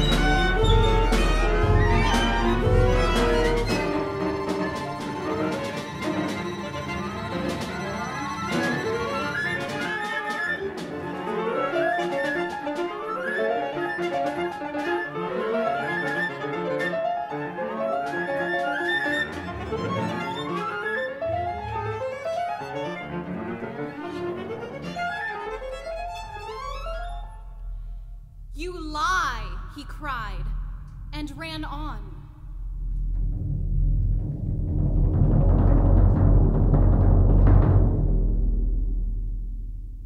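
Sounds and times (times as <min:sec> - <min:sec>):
chamber orchestra playing: 0:00.0 - 0:27.9.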